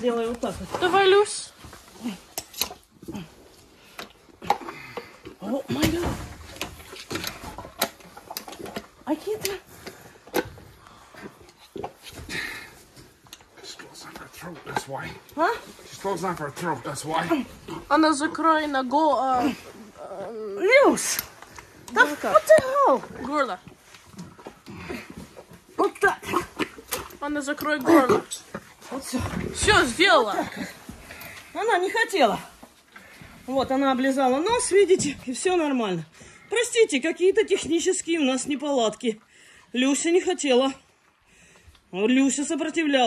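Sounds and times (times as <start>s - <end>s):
cow throaty sounds and breathing: 1.6s - 33.9s.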